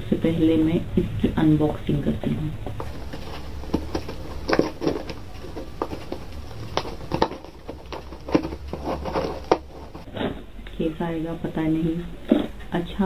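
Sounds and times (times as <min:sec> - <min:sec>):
scissors cutting cardboard and tape: 0:02.9 - 0:10.4.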